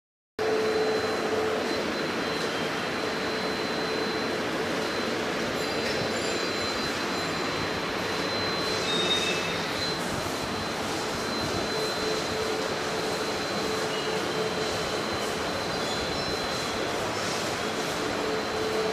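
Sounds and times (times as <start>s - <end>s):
faint high whine: 0.4s - 18.9s
indoor hall rushing noise: 0.4s - 18.9s.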